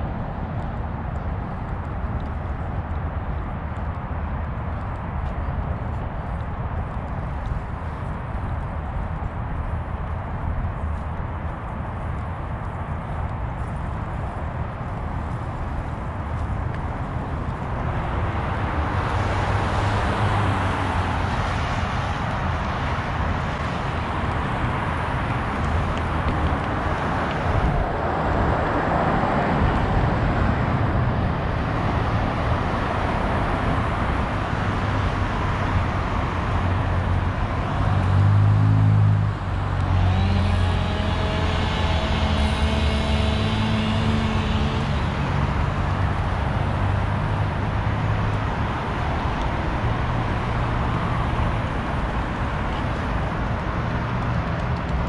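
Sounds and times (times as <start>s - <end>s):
city road traffic passing: 0.0s - 55.0s
vehicle engine humming close by: 0.0s - 55.0s.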